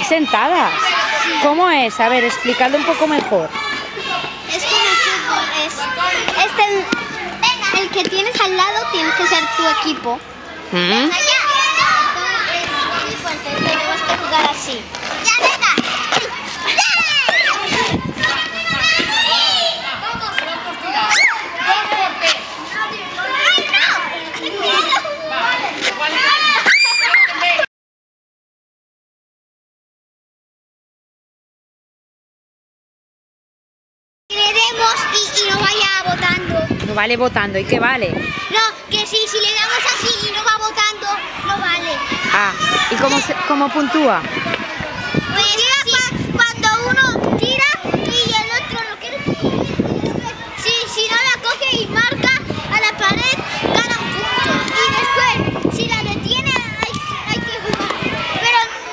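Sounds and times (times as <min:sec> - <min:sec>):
children shouting: 0:00.0 - 0:27.7, 0:34.3 - 0:36.9, 0:38.0 - 0:58.9
girls chattering and laughing: 0:00.0 - 0:27.7, 0:34.3 - 0:58.9.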